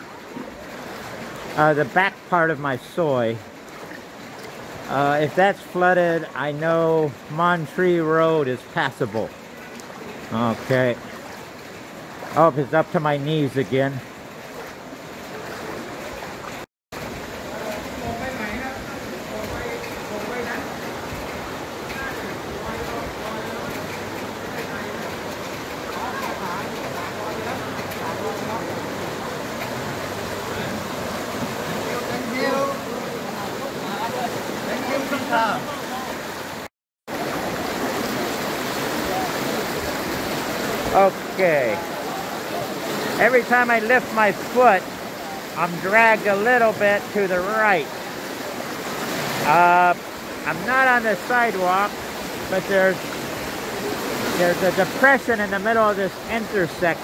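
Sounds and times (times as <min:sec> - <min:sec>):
floodwater splashing around wading: 0:00.0 - 0:57.0.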